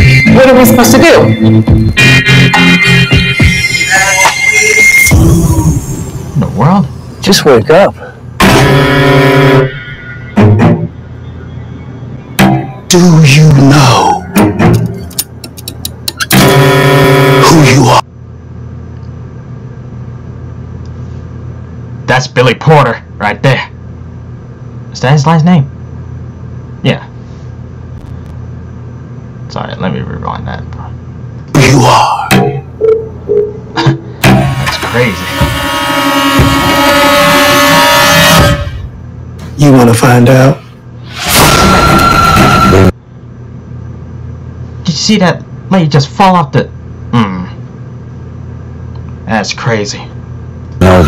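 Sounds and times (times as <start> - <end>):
sharp ticks: 14.8 - 16.2.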